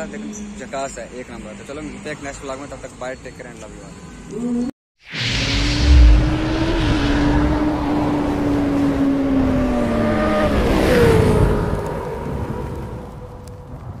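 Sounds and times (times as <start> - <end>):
swish: 5.0 - 8.5
deep hit: 5.1 - 8.3.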